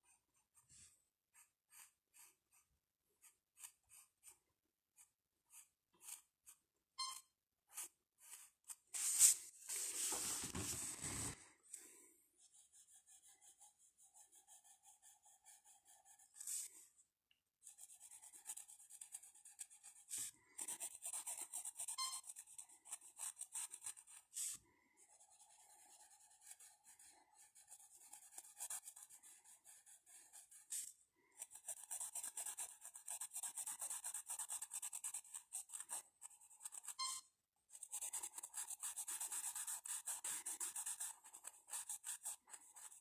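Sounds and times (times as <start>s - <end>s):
pencil scratching on paper: 0.0s - 6.7s, 7.7s - 11.4s, 12.4s - 16.8s, 17.6s - 43.0s.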